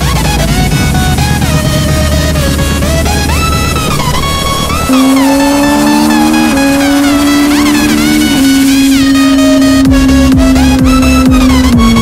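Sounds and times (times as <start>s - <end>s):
motorcycle engine at high revs: 0.0s - 12.0s.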